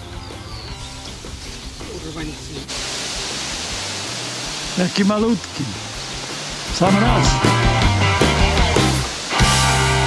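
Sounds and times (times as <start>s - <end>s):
steady hiss: 1.0s - 10.0s.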